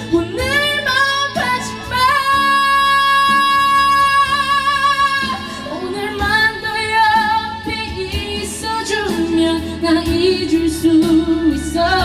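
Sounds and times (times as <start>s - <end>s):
karaoke backing track: 0.0s - 12.0s
woman singing into microphone: 0.0s - 12.0s.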